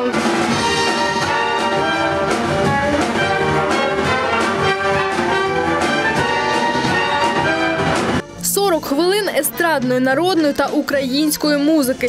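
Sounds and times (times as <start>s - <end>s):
horn section playing a tune: 0.3s - 8.4s.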